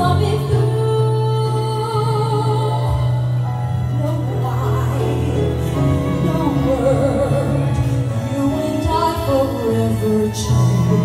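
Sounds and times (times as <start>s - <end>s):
woman singing with vibrato: 0.0s - 11.0s.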